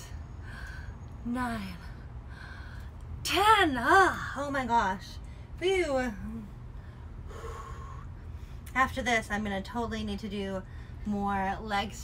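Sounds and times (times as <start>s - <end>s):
woman exhaling breathily: 7.2s - 8.4s.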